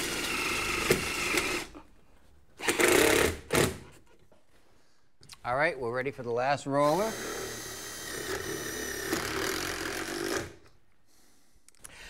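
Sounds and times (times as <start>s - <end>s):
impact driver whining: 0.0s - 1.8s, 2.6s - 3.8s, 6.8s - 10.7s.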